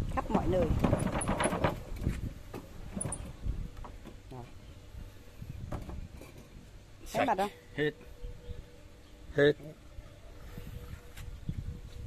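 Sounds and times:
frame basket knocks and clicks: 0.6s - 4.2s.

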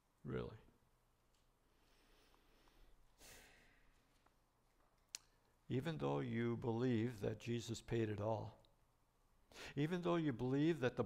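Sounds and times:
soft breath: 1.7s - 4.2s, 9.5s - 9.8s.

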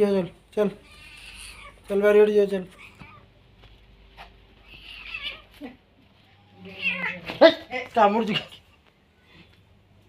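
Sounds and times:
kitten meowing: 6.4s - 7.4s.

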